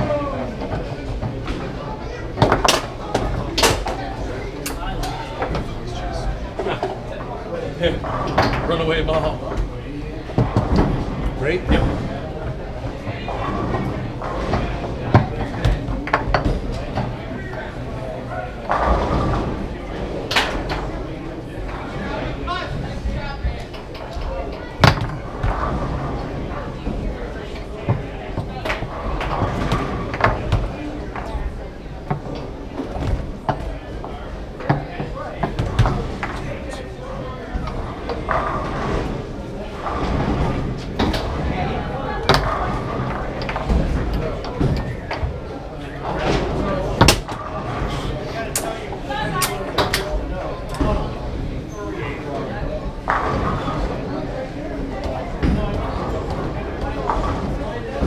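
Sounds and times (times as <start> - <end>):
voices in a large room: 0.0 - 58.0
foosball ball clacks: 0.5 - 5.7, 10.3 - 17.7, 23.6 - 47.7.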